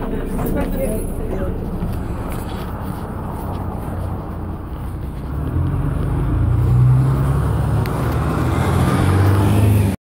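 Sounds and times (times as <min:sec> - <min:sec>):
diesel bus engine humming: 0:00.0 - 0:10.0
road noise: 0:00.0 - 0:10.0.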